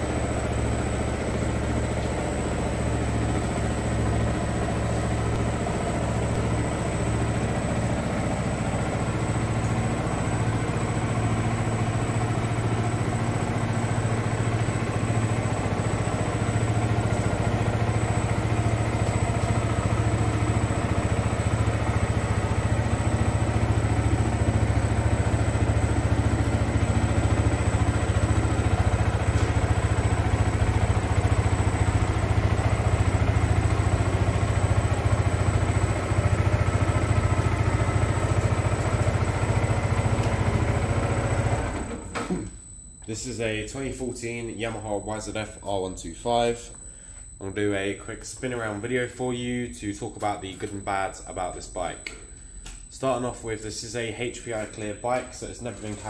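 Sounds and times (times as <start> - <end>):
motorcycle engine idling: 0.0 - 41.8.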